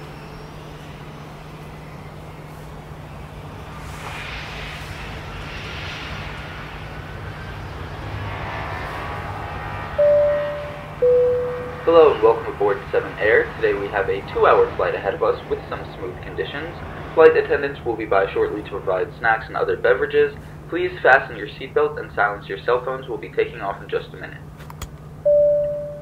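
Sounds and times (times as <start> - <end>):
airliner cabin drone: 0.0 - 26.0
two-note cabin chime: 10.0 - 11.9, 25.3 - 26.0.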